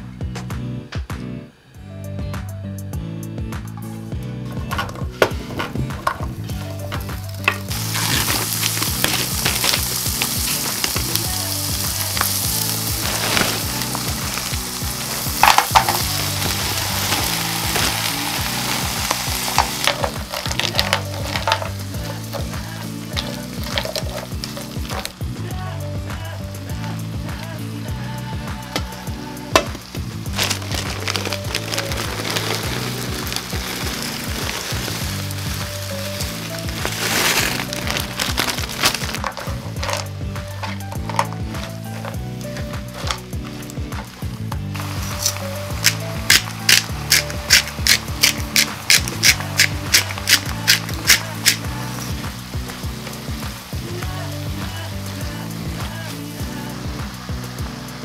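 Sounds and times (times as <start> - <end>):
food sizzling in a pan: 6.5 - 58.0.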